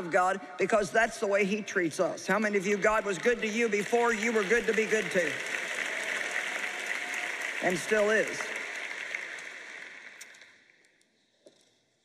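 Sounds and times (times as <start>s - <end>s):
large audience applauding: 2.3s - 10.6s.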